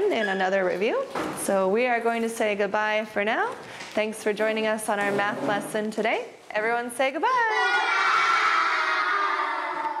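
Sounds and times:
children calling out together: 0:07.5 - 0:10.0.

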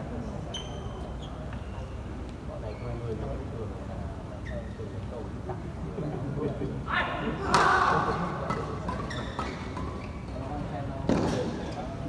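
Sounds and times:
loud shout: 0:06.9 - 0:08.2.

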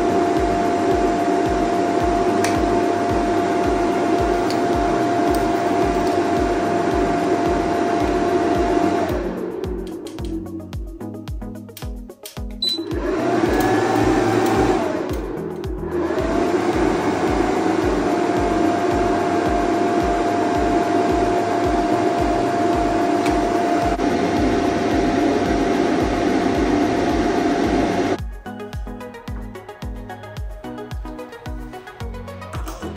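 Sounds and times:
cooling fans whirring with whine: 0:00.0 - 0:11.8, 0:12.6 - 0:28.2
short high beep: 0:12.6 - 0:12.9.

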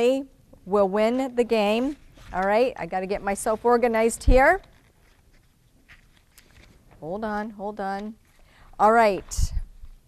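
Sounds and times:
paper sheets rustling: 0:01.5 - 0:08.4.

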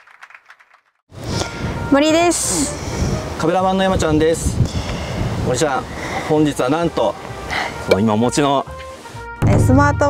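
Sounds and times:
woman speaking: 0:09.4 - 0:10.0.

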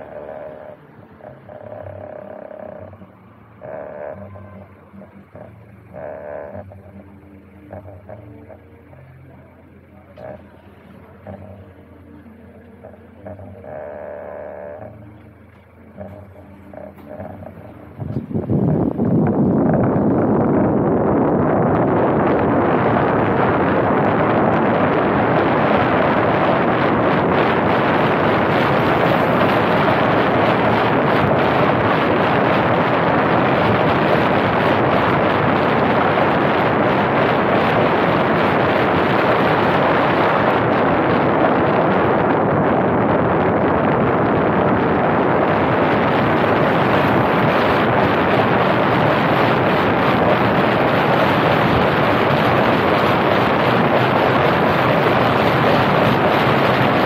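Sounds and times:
wind rushing over microphone: 0:00.0 - 0:15.2, 0:15.8 - 0:57.0
road noise: 0:00.0 - 0:57.0.

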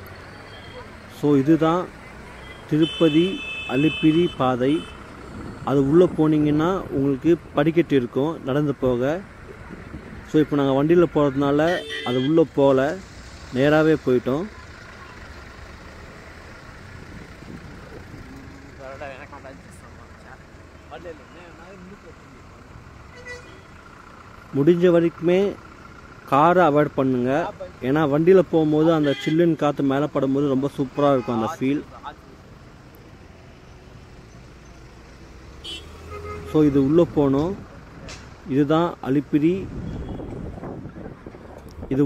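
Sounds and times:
low engine rumble: 0:00.0 - 0:42.0
traffic noise: 0:00.0 - 0:42.0.

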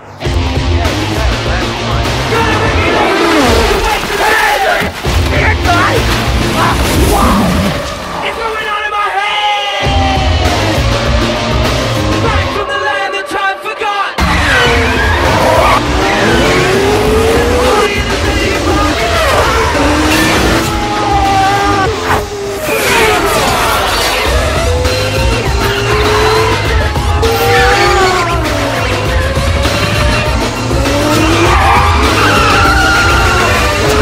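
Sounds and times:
film score music: 0:00.0 - 0:34.0
race car engines at high revs: 0:14.2 - 0:34.0
tyres squealing: 0:22.6 - 0:34.0.

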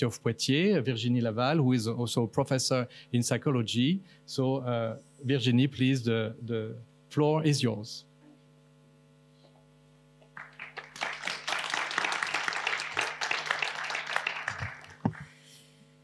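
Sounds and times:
electrical mains hum: 0:00.0 - 0:16.0
audience applauding: 0:10.3 - 0:15.4.

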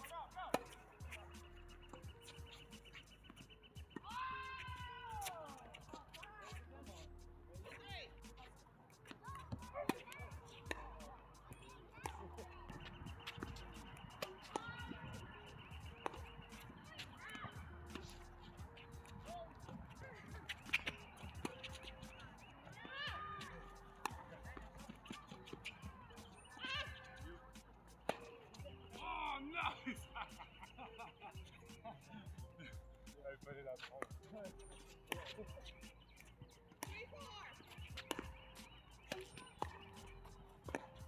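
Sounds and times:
tennis racket hitting ball: 0:00.0 - 0:07.0, 0:07.6 - 0:29.1, 0:35.1 - 0:41.0.

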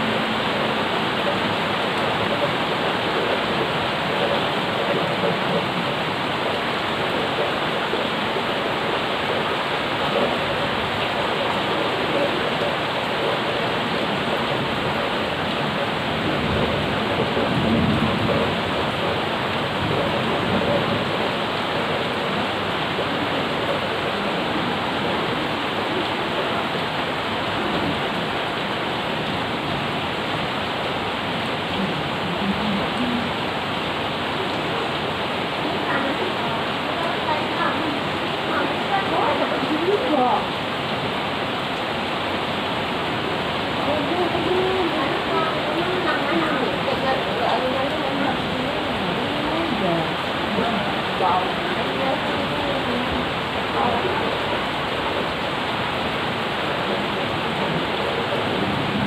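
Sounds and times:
rain falling on paving: 0:00.0 - 0:59.0.

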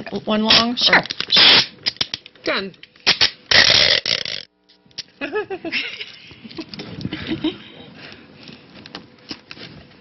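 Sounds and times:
adhesive tape ripping off roll: 0:00.5 - 0:02.2, 0:03.0 - 0:04.5.

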